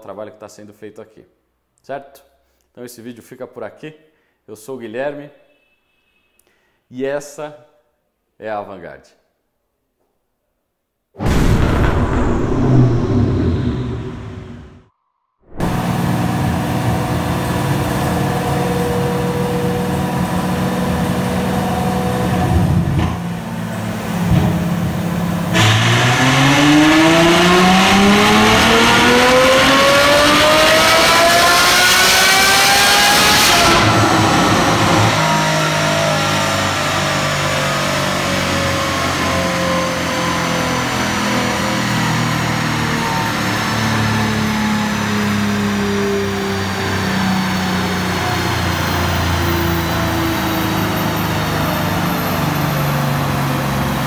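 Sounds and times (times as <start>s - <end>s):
car engine revving on dynamometer: 15.6s - 23.0s, 24.9s - 54.0s.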